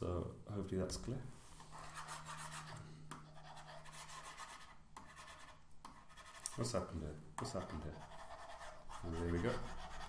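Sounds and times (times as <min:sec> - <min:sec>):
stylus rubbing on drawing tablet: 0:01.7 - 0:06.8, 0:07.4 - 0:10.0.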